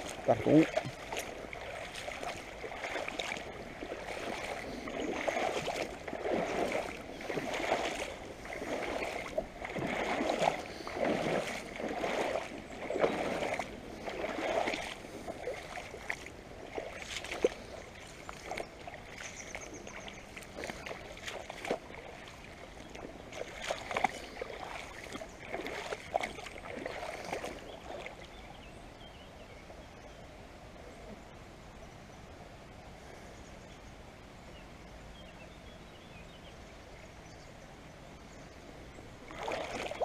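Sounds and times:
water splashing and sloshing: 0:00.0 - 0:29.8, 0:38.7 - 0:40.0
river water over gravel: 0:00.0 - 0:40.0.

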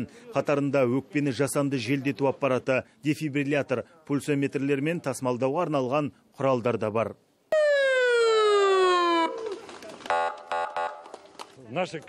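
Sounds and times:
ambulance siren wail: 0:07.5 - 0:11.2.

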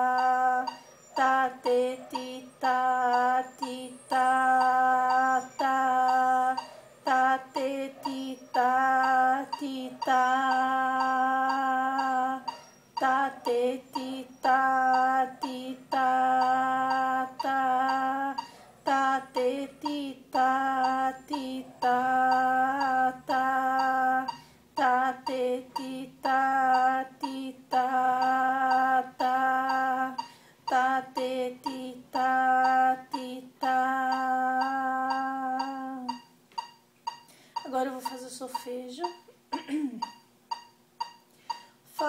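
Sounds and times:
woman chanting rhythm syllables: 0:00.0 - 0:40.2, 0:41.5 - 0:42.0.

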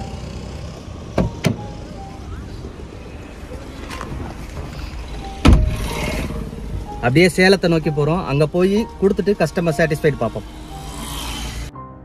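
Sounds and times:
car door clicking open: 0:01.2 - 0:01.7
car door slammed shut: 0:05.4 - 0:05.9.

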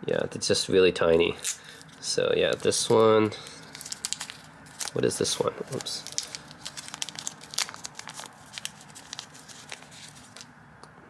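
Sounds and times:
wrapping crinkling: 0:01.3 - 0:10.5.

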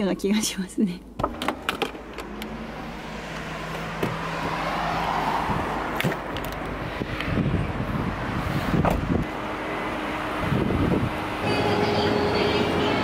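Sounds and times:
outdoor traffic noise: 0:00.0 - 0:13.0
car door shutting: 0:01.2 - 0:02.6, 0:03.6 - 0:04.7, 0:08.7 - 0:09.2.

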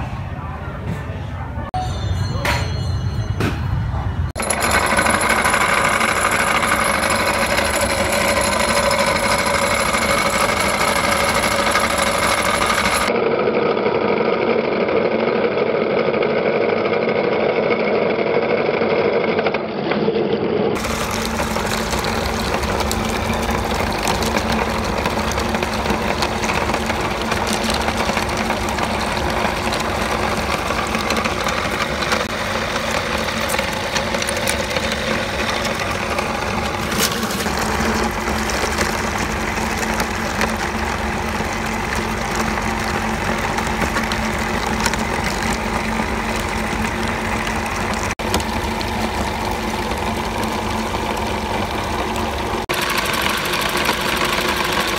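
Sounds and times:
meat grinder grinding fish: 0:04.4 - 0:54.9.

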